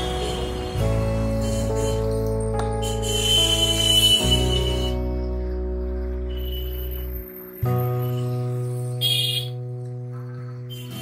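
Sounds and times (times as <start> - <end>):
bright chime-like shimmer: 6.3 - 9.5.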